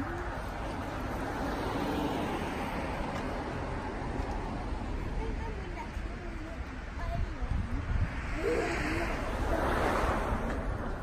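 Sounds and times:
wind buffeting microphone: 3.4 - 11.0.

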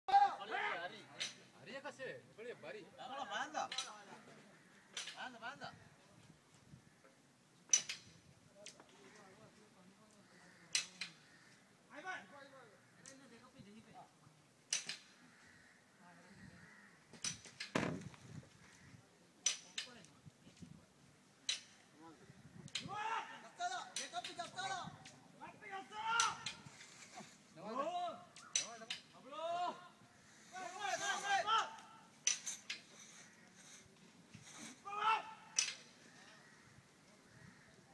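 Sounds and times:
sharp knocks: 17.6 - 18.2.

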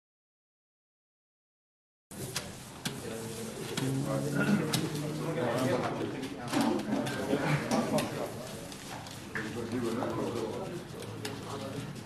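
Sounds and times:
players chattering: 3.0 - 12.0.

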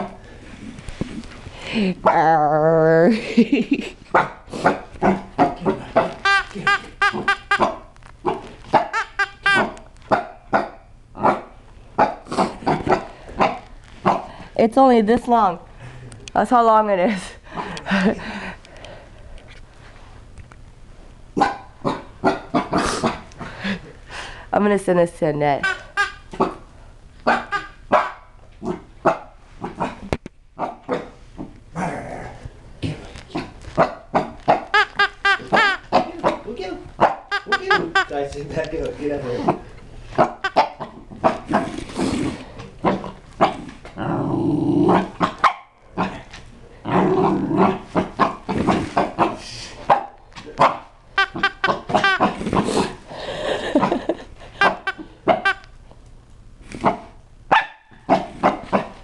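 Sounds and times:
puppy barking: 4.1 - 14.2, 21.4 - 22.8, 27.2 - 29.9, 33.8 - 36.4, 37.0 - 38.0, 40.2 - 41.4, 45.2 - 45.7, 49.9 - 52.4, 54.6 - 55.7, 56.8 - 58.9.

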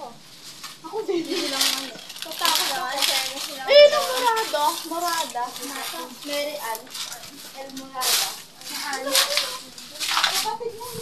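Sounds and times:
young women talking: 0.8 - 11.0.

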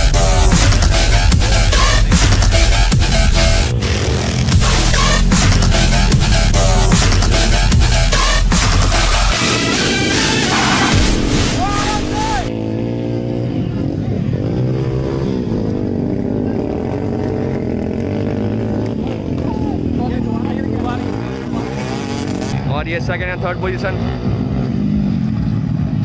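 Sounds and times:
electronic music: 0.0 - 12.5
dirt bike engines revving: 0.0 - 26.0.

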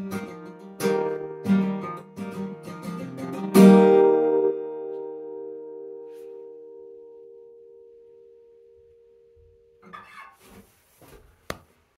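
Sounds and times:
acoustic guitar chord ringing: 0.0 - 10.5
shuffling handling noises: 10.1 - 12.0.

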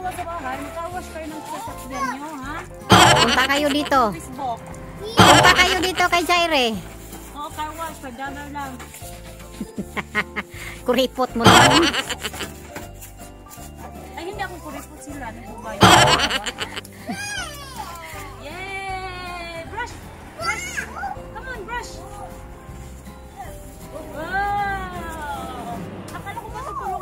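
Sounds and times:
background music with bass line: 2.8 - 4.2, 5.1 - 6.8, 11.4 - 12.6, 15.8 - 17.0.

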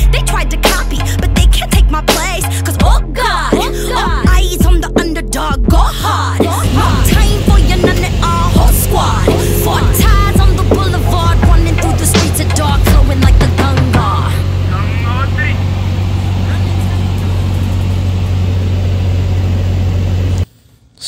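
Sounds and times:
rap music with vocals: 0.0 - 15.6
airplane engine and propeller drone: 6.5 - 20.6.

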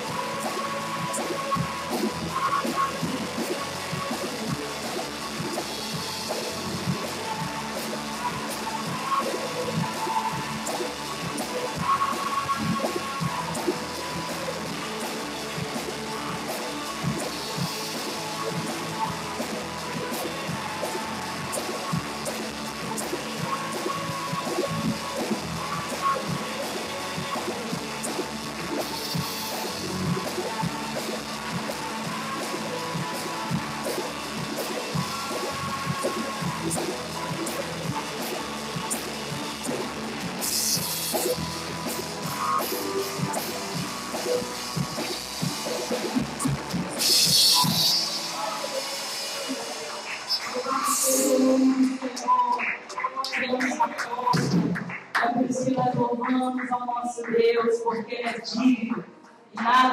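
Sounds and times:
worship band playing: 0.0 - 54.8
drum kit: 0.0 - 59.9.

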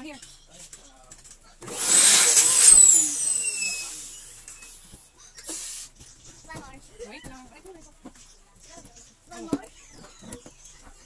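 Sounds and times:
electric balloon pump whine: 1.6 - 5.9.

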